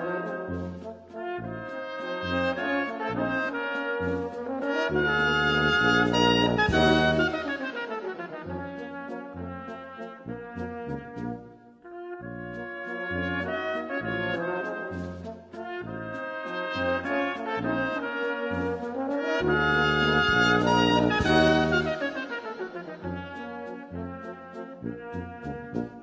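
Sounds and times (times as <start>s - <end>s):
brass band music: 0.0s - 26.0s.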